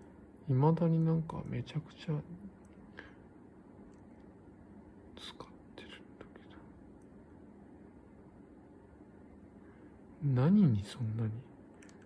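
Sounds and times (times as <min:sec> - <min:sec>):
laptop fan hum: 0:00.0 - 0:12.0.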